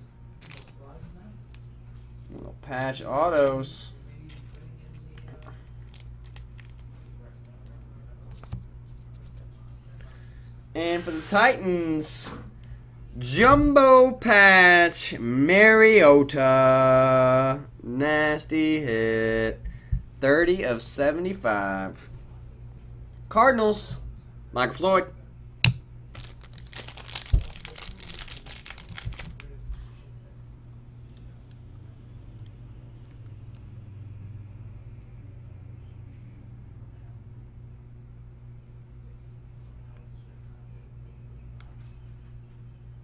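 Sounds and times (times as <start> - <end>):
low electrical hum: 0.0 - 43.0
wrapper crinkling: 0.4 - 0.9, 4.2 - 7.0, 26.1 - 29.8.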